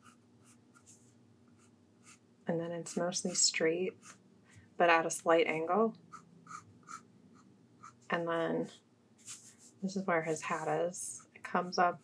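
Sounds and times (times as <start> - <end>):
pencil scratching on paper: 0.0 - 4.2, 6.1 - 8.1, 10.3 - 11.3.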